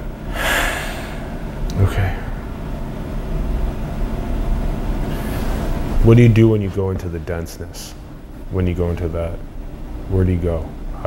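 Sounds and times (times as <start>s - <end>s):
man breathing out heavily: 0.3s - 1.5s
man speaking softly: 1.7s - 2.3s.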